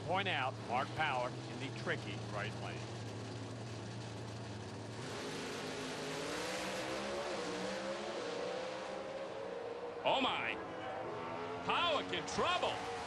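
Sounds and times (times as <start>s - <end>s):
drag car engines accelerating: 0.0s - 13.0s.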